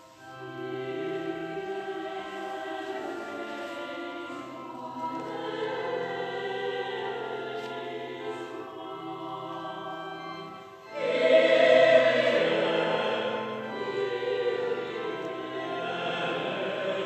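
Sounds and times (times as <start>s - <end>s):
choir singing sustained chords: 0.0s - 17.0s
music: 0.0s - 17.0s.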